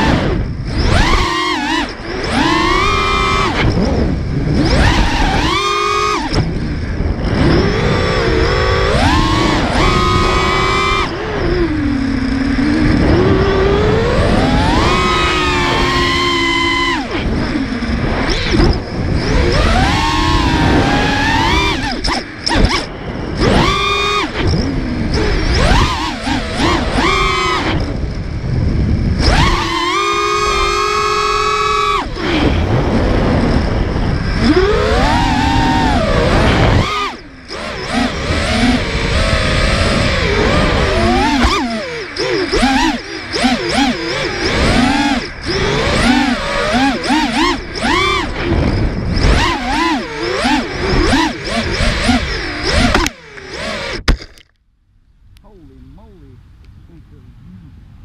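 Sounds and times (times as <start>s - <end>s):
drone motors and propellers whining: 0.0s - 54.4s.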